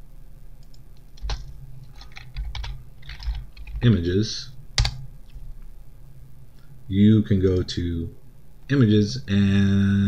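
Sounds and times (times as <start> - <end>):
low steady hum: 0.0 - 10.0
keyboard typing: 0.6 - 4.0, 4.8 - 5.0.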